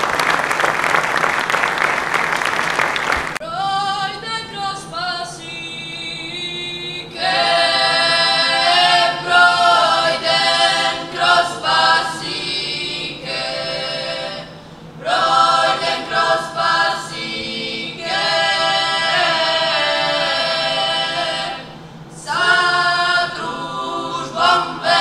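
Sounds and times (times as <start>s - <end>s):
children singing a cappella: 3.6s - 25.0s.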